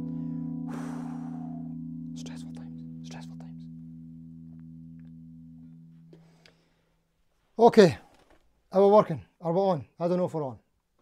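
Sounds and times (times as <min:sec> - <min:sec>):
electric guitar chord ringing: 0:00.0 - 0:06.7.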